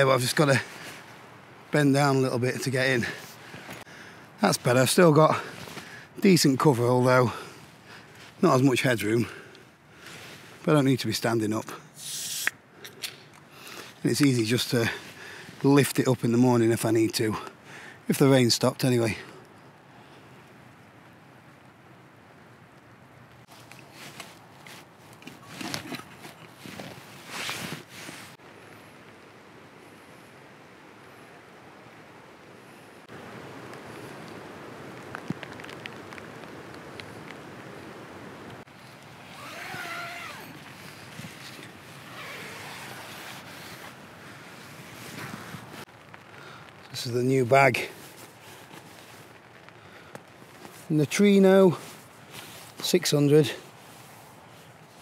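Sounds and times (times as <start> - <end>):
leaves rustling: 0.0 - 55.0
wind blowing through woodland: 0.0 - 55.0.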